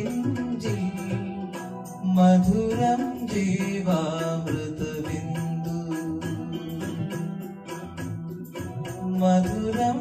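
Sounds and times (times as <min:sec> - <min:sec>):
backing track with light beat: 0:00.0 - 0:10.0
young man singing into microphone: 0:00.0 - 0:10.0.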